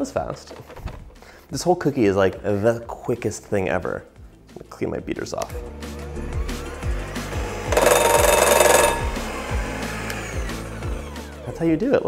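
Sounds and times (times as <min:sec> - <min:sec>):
background music: 0:00.0 - 0:12.0
electric hand mixer whine: 0:06.7 - 0:11.5.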